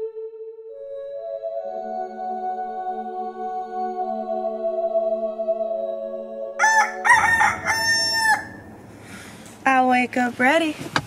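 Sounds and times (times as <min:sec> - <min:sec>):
rooster crowing: 0:06.6 - 0:09.3.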